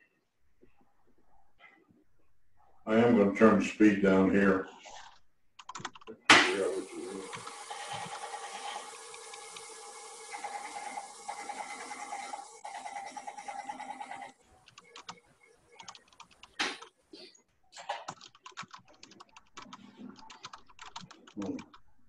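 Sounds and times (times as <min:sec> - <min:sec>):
turning tool cutting wood: 0:06.5 - 0:14.4
wood lathe humming: 0:06.7 - 0:14.3.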